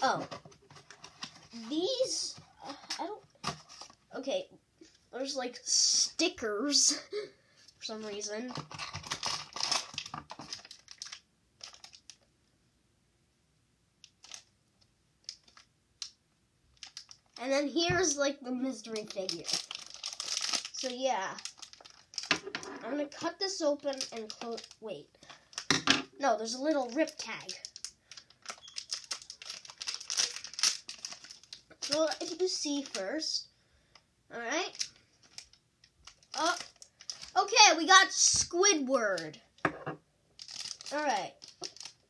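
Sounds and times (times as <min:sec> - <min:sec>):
plastic packaging crinkling: 0:00.2 - 0:04.0, 0:08.0 - 0:12.2, 0:14.1 - 0:14.5, 0:15.2 - 0:15.7, 0:16.8 - 0:17.4, 0:18.8 - 0:25.7, 0:26.8 - 0:33.0, 0:34.6 - 0:37.6, 0:40.4 - 0:42.0.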